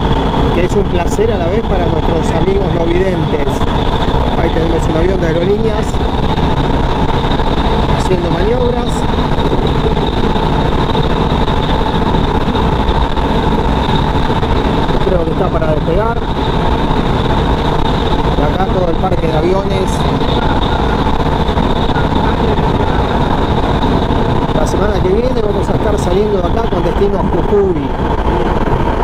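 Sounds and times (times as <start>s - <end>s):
steady hum: 0.0s - 29.0s
train wheels rumbling on rail: 0.0s - 29.0s.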